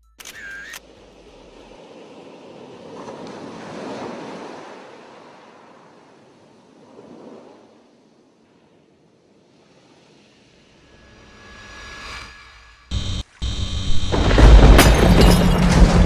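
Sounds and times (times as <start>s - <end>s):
ocean waves washing in: 0.8s - 16.0s.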